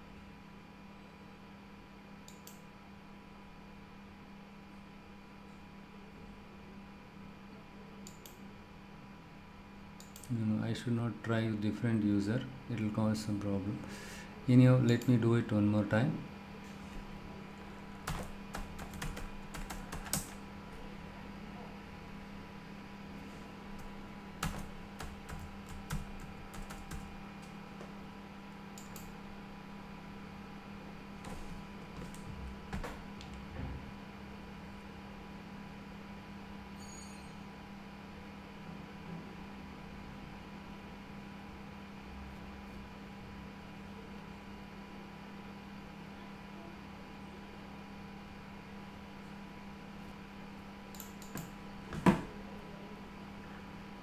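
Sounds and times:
steady low hum: 0.0 - 54.0
keyboard typing: 18.0 - 20.4, 23.8 - 27.1.

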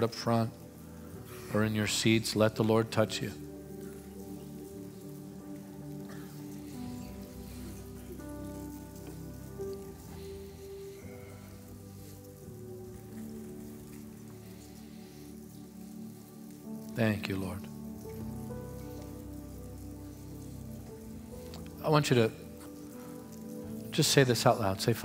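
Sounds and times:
faint hiss: 0.0 - 25.0
keyboard playing sustained chords: 0.0 - 25.0.

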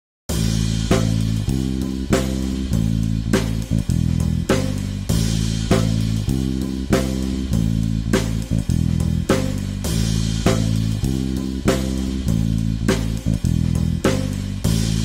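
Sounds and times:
guitar and bass music: 0.3 - 15.0
steady drum beat: 0.3 - 15.0.

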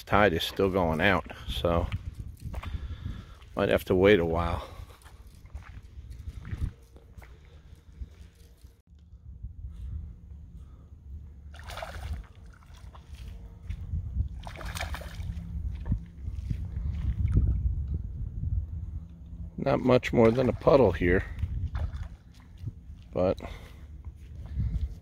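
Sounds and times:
wind rumble on microphone: 0.0 - 25.0
fish splashing in water: 11.5 - 13.2, 14.4 - 15.4.

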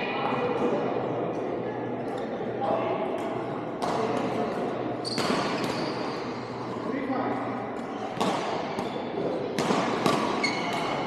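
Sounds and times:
court shoes squeaking: 3.2 - 6.9, 7.5 - 11.0
racket hitting shuttlecock: 8.1 - 11.0.

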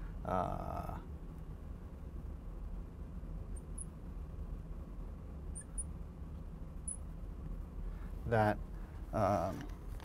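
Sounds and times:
low hum: 0.0 - 10.0
marker squeaking on glass: 5.6 - 5.9.

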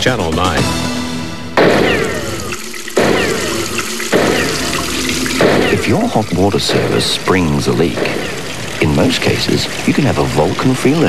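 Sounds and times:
water gushing from leak: 1.6 - 11.0
falling whistle: 1.8 - 4.8.

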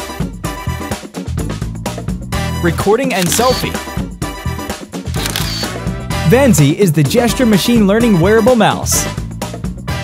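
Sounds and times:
background music: 0.0 - 10.0
camera shutter click: 3.2 - 3.8, 5.2 - 5.8.

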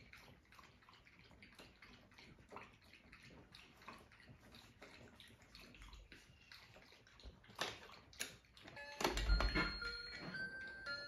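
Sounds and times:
faint wet clicks: 0.0 - 8.8
toy electronic beeps and jingle: 8.8 - 11.0.

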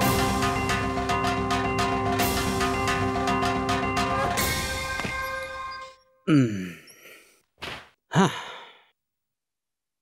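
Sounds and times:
person sighing: 6.3 - 7.3, 8.1 - 8.9.

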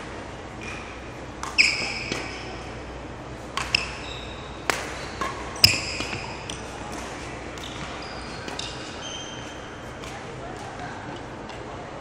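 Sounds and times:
rackets hitting shuttlecock: 0.6 - 11.7.

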